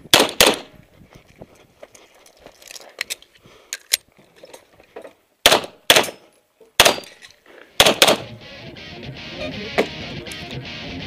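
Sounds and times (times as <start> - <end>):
pistol shots with ringing echo: 0.1 - 0.7, 5.4 - 6.2, 6.8 - 7.1, 7.8 - 8.3
music: 8.2 - 11.0.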